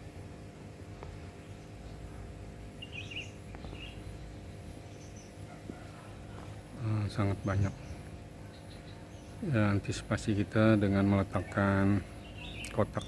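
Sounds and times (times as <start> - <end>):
steady low hum: 0.0 - 13.0
bird chirps: 2.7 - 6.1, 7.6 - 9.4, 11.2 - 13.0.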